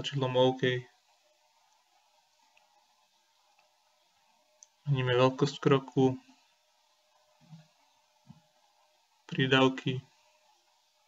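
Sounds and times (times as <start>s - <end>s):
person speaking: 0.0s - 0.9s
faint room hum: 0.0s - 11.0s.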